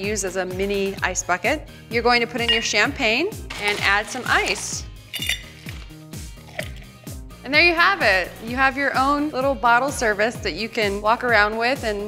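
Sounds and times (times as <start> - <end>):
background music with steady beat: 0.0 - 12.0
ice cubes clinking: 2.5 - 2.9, 3.5 - 6.9.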